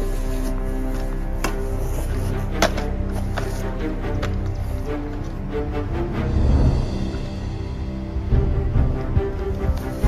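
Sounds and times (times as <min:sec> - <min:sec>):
sustained tone music: 0:00.0 - 0:10.0.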